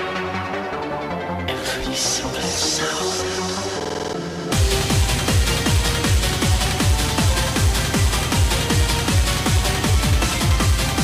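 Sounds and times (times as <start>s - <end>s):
hard techno music: 0.0s - 11.0s.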